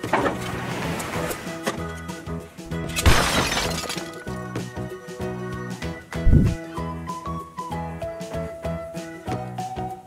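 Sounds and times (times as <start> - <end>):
background music: 0.0 - 10.0
plastic toy crashing and shattering: 2.8 - 4.4.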